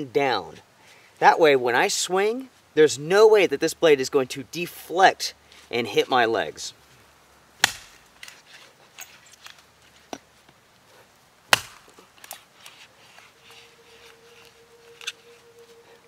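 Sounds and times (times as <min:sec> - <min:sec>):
hatchet chopping wood: 0:07.6 - 0:08.0, 0:11.5 - 0:12.0.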